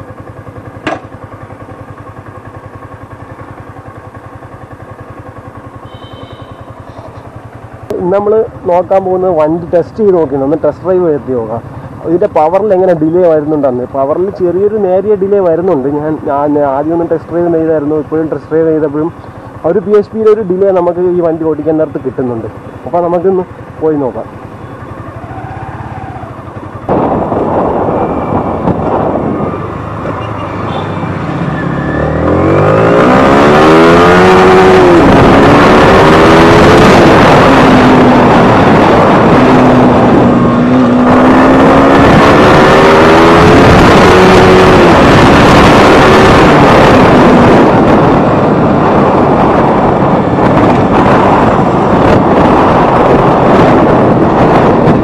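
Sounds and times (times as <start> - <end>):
motorcycle engine revving: 0.0 - 55.0
wind rushing over microphone: 25.5 - 30.4, 31.0 - 55.0.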